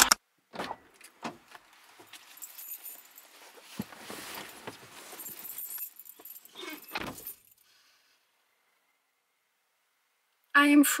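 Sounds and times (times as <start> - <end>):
car keys jangling: 2.0 - 7.6.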